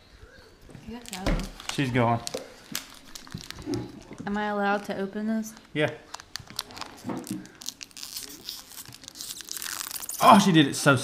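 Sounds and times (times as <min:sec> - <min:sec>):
foil pack crinkling and tearing: 0:01.0 - 0:04.4, 0:05.6 - 0:10.6.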